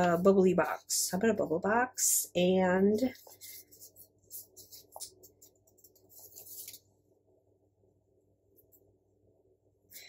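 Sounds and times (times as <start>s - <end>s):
scratchy rustling of sticker paper: 2.9s - 6.9s.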